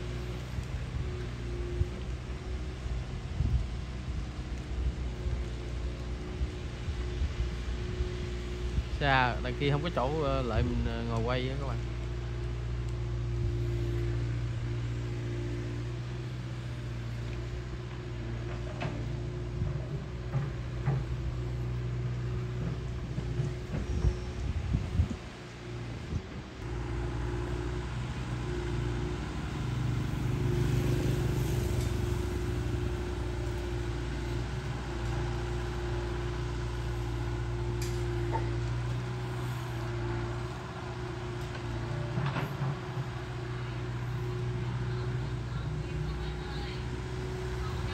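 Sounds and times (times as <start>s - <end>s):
diesel engine running: 0.0s - 47.9s.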